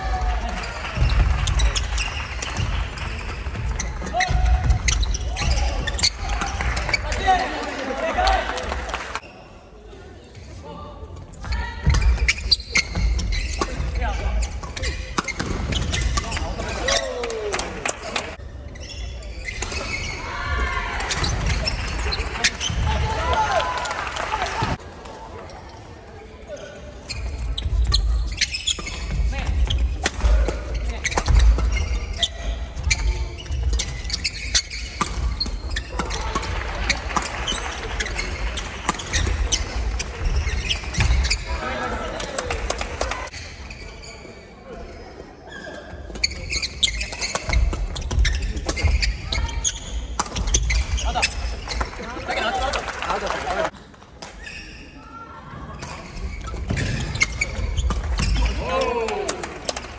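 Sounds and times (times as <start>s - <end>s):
players shouting: 58.3s - 59.6s.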